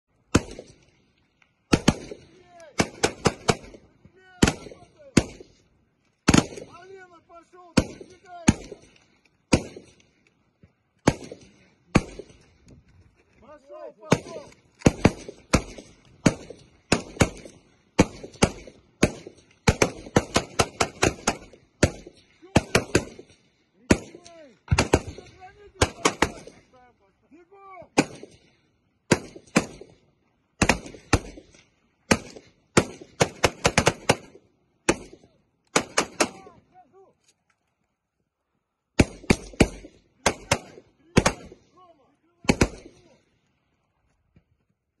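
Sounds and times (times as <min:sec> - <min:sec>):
rifle shots: 0:00.2 - 0:01.0, 0:01.6 - 0:05.6, 0:06.2 - 0:07.0, 0:07.7 - 0:10.2, 0:11.0 - 0:12.5, 0:14.0 - 0:26.7, 0:27.9 - 0:36.6, 0:38.9 - 0:41.7, 0:42.4 - 0:43.2.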